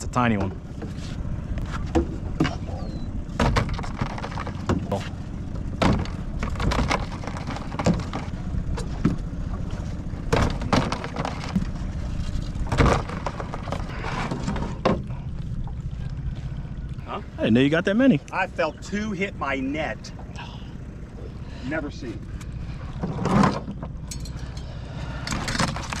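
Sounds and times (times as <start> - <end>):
outboard motor humming: 0.0 - 26.0
knocks against aluminium boat: 3.4 - 5.1, 5.7 - 9.2.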